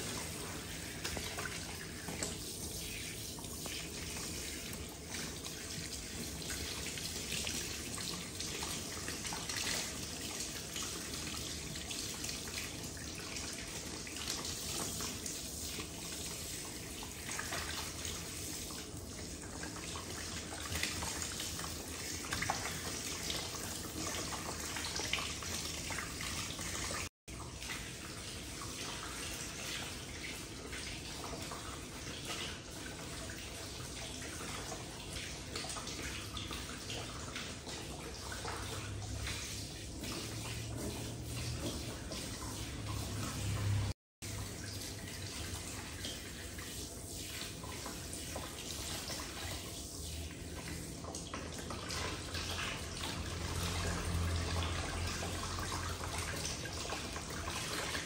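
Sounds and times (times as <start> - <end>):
water running into sink: 0.0 - 58.0
water splashing: 33.9 - 58.0.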